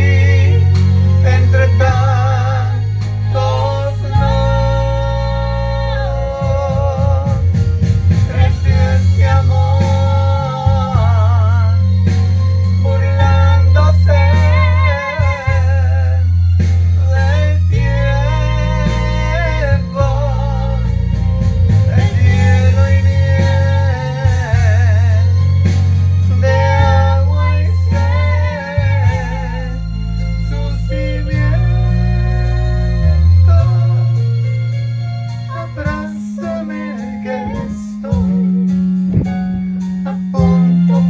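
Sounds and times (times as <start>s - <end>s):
deep bass notes: 0.0s - 41.0s
guitar: 0.0s - 41.0s
person singing a romantic ballad: 0.0s - 41.0s.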